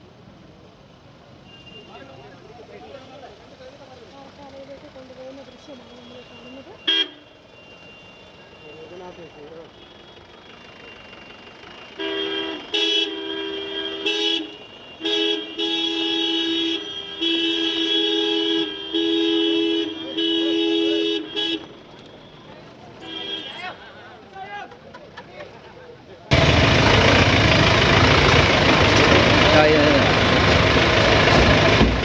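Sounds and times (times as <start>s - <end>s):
two-tone vehicle horn: 11.9s - 23.8s.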